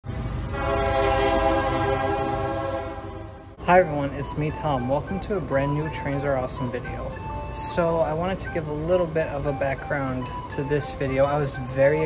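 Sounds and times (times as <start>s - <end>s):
train passing rumble: 0.0s - 12.0s
train horn chord: 0.4s - 6.0s.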